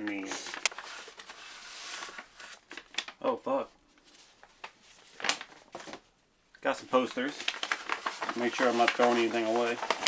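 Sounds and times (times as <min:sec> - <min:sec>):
paper crinkles and taps: 0:00.0 - 0:01.4, 0:02.1 - 0:03.2, 0:04.0 - 0:06.0, 0:07.0 - 0:10.0
paper rustling: 0:00.0 - 0:03.3, 0:03.9 - 0:06.1, 0:06.7 - 0:10.0.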